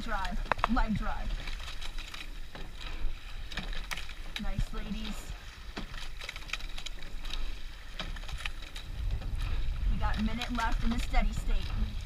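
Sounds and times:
oar blades in water: 0:00.0 - 0:12.0
oars clicking in oarlocks: 0:00.0 - 0:12.0
wind rumble on microphone: 0:07.1 - 0:12.0.

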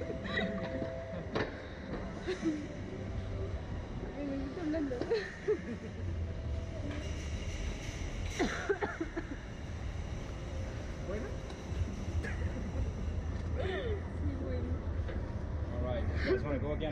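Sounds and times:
steady low rumble: 0:00.0 - 0:16.9
women laughing and chattering: 0:02.0 - 0:14.8.

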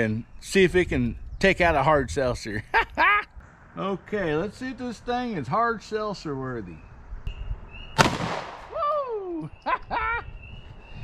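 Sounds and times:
man laughing: 0:02.5 - 0:03.3, 0:08.7 - 0:10.4
pistol shot: 0:08.0 - 0:08.7
man whooping: 0:08.7 - 0:10.2.

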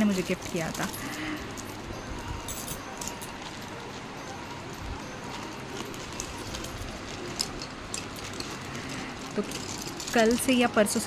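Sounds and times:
plastic bag rustling: 0:00.0 - 0:11.0
pencils and brushes clicking: 0:02.7 - 0:11.0.

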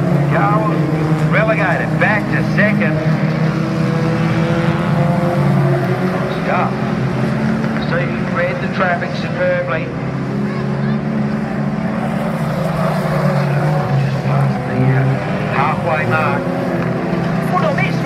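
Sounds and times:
racing car engines revving: 0:00.0 - 0:18.0.

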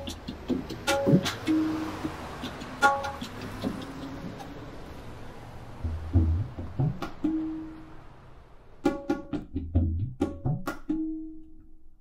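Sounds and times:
tabla bass drum pitch bending: 0:00.0 - 0:04.7, 0:05.8 - 0:07.9, 0:08.8 - 0:11.8
tabla treble drum stroke: 0:00.0 - 0:05.2, 0:05.8 - 0:08.2, 0:08.8 - 0:11.7.

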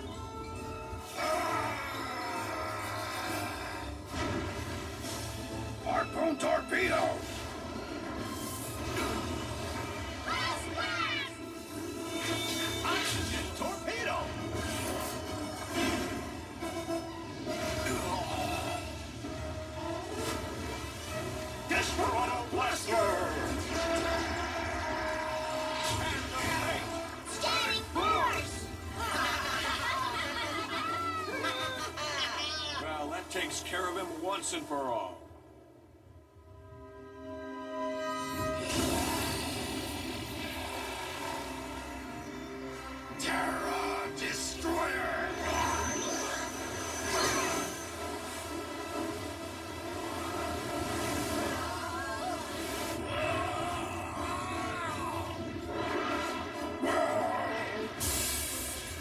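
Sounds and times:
background music: 0:00.0 - 0:59.0.

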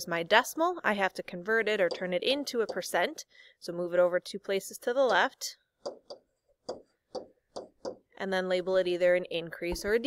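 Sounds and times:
stylus tapping on tablet: 0:01.8 - 0:03.0, 0:05.0 - 0:08.1.

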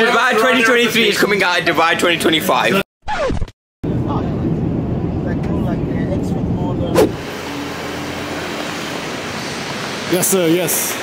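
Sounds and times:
traffic hum: 0:03.8 - 0:11.0.

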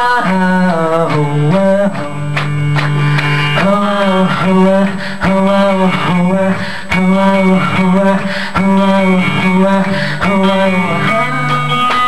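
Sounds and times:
guitar chords strummed: 0:00.0 - 0:12.0.

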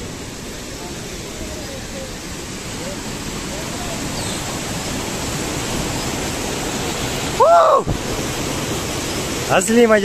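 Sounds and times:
stream rushing over boulders: 0:00.0 - 0:10.0.

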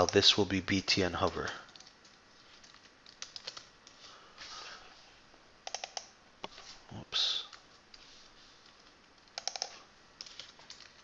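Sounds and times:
keyboard typing: 0:01.2 - 0:04.0, 0:05.6 - 0:06.1, 0:08.6 - 0:11.0.

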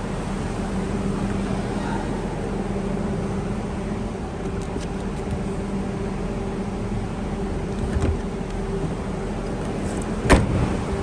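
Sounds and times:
steady hum: 0:00.0 - 0:11.0
car boot lid thud: 0:10.2 - 0:10.7.

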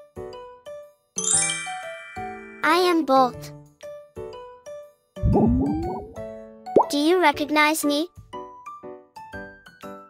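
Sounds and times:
light background music: 0:00.0 - 0:10.0
low wobbling sound effect: 0:05.2 - 0:06.2
tone gliding upward: 0:05.2 - 0:06.2.

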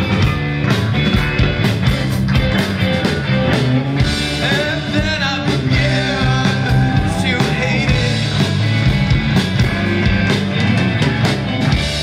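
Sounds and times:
drum kit: 0:00.0 - 0:12.0
electric bass: 0:00.0 - 0:12.0
electric guitar: 0:00.0 - 0:12.0.

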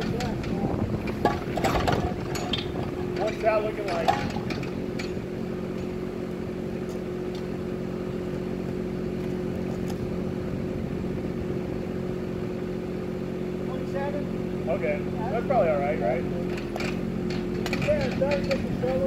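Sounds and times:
small diesel engine running: 0:00.0 - 0:19.0.

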